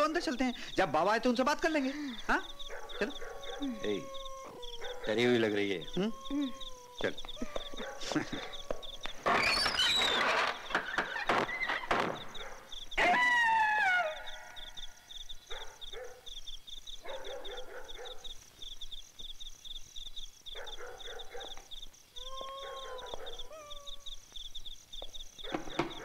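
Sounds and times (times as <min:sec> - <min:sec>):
crickets chirping: 0:00.0 - 0:26.0
dogs howling: 0:02.2 - 0:09.2, 0:22.2 - 0:24.2.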